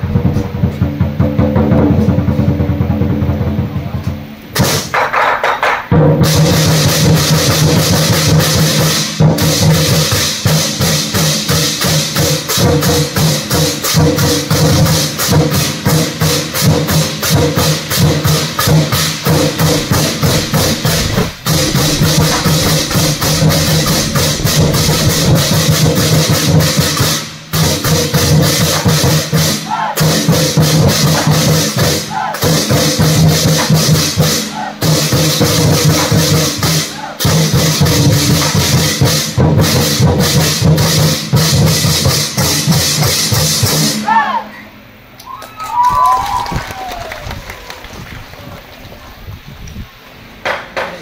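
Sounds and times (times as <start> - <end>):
drum ensemble playing fast beat: 0.0 - 44.2
hand cymbals crashing: 6.2 - 44.0.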